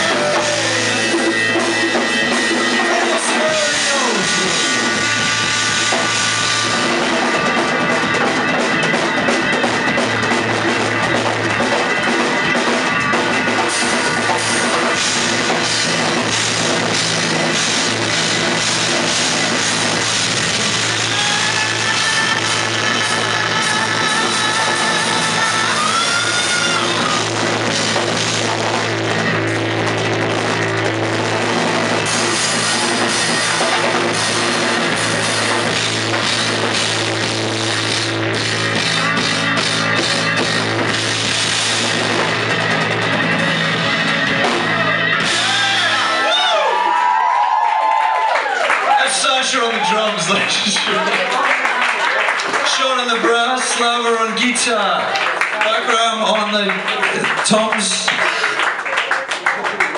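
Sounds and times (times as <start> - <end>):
bass guitar: 0.0 - 59.9
drum kit: 0.0 - 59.9
electric guitars: 0.0 - 59.9.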